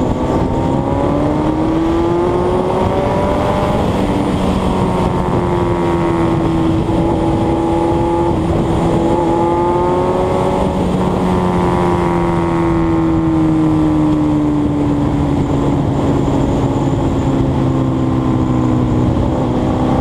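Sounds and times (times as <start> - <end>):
motorcycle engine running: 0.0 - 20.0
wind rush on microphone: 0.0 - 20.0.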